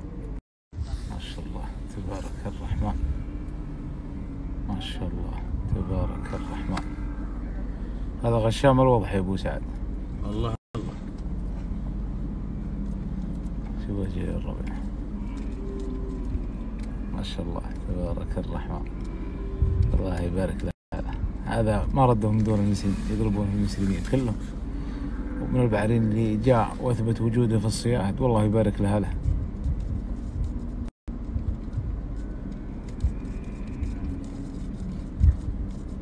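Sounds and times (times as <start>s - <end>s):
vehicle engine idling: 0.0s - 36.0s.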